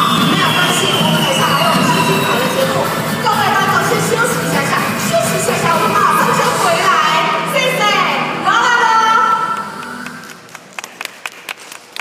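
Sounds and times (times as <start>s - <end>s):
music: 0.0s - 11.6s
audience clapping: 9.5s - 12.0s.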